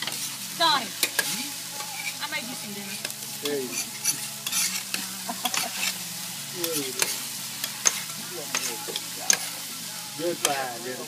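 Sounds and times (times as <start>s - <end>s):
rice sizzling on a griddle: 0.0s - 11.0s
metal spatulas scraping griddle: 1.0s - 10.8s.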